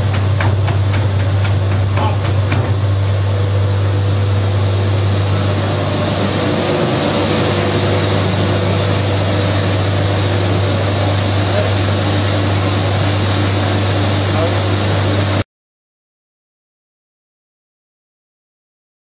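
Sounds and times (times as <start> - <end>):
treadmill motor humming: 0.0 - 15.4.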